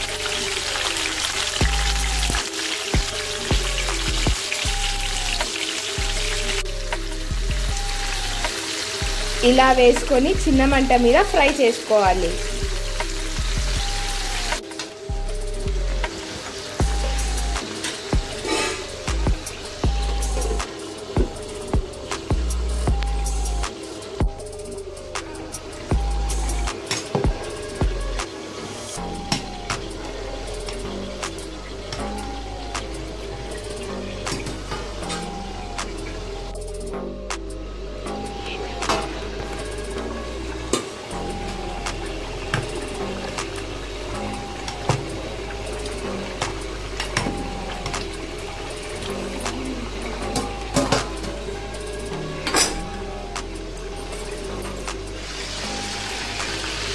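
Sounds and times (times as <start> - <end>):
chicken frying in a pan: 0.0 - 24.4, 38.7 - 56.9
background music: 0.0 - 56.9.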